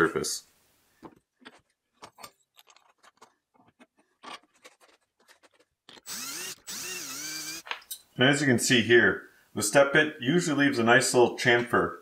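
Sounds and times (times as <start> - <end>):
power drill drilling aluminium: 6.0 - 7.7.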